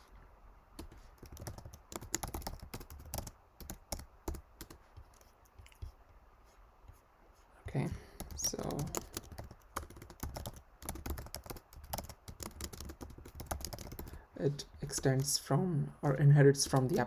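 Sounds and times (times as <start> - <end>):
typing on computer keyboard: 0.8 - 5.8, 8.2 - 14.2, 16.6 - 17.0.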